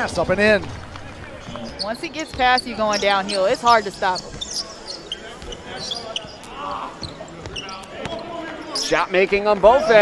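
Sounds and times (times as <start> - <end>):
faint voices: 0.0 - 10.0
shoe squeaks: 1.4 - 9.0.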